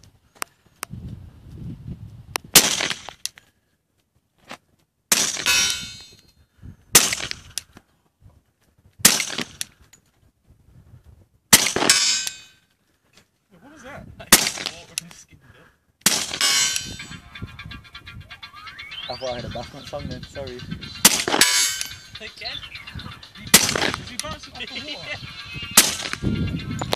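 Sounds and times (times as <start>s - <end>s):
suppressed pistol shots: 2.6s - 3.1s, 7.0s - 7.4s, 9.0s - 9.6s, 11.5s - 12.4s, 14.3s - 14.9s, 16.0s - 17.0s, 21.0s - 22.0s, 23.5s - 24.3s, 25.8s - 26.2s.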